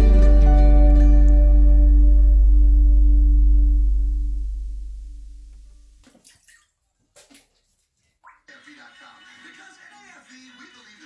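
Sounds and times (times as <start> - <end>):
water sloshing in toilet bowl: 6.0 - 8.5.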